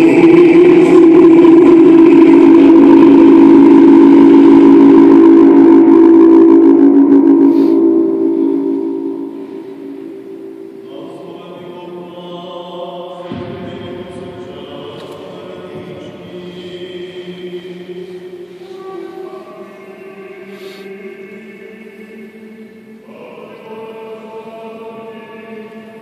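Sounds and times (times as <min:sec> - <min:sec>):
choir singing sustained chord: 0:00.0 - 0:26.0
group of voices holding chord: 0:00.0 - 0:26.0
low voice singing: 0:00.0 - 0:26.0.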